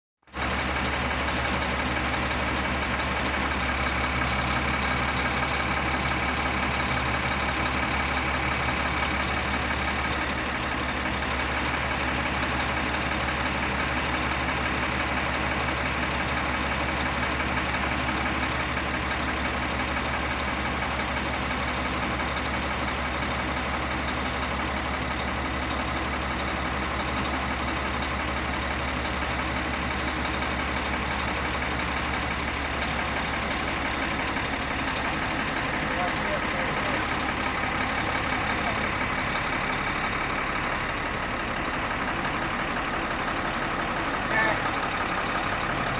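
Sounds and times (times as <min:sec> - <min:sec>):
truck engine idling: 0:00.3 - 0:45.9.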